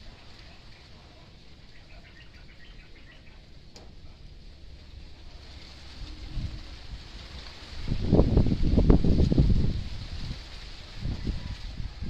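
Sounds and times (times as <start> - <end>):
wind buffeting microphone: 5.5 - 12.0.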